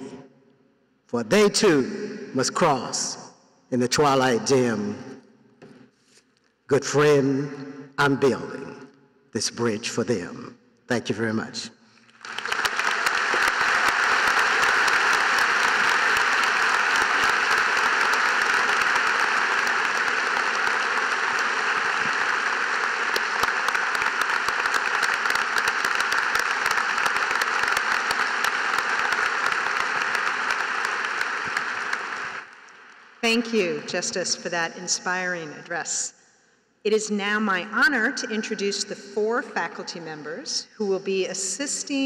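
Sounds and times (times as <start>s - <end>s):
large audience applauding: 12.0s - 33.2s.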